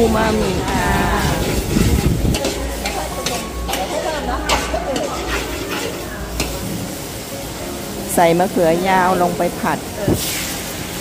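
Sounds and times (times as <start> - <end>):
metal spatula scraping a wok: 0.0 - 7.1, 10.2 - 11.0
paste sizzling in oil: 0.0 - 11.0.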